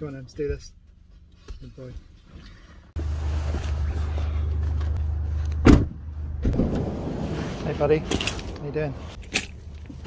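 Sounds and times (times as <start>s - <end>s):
van door slamming: 5.6s - 7.0s.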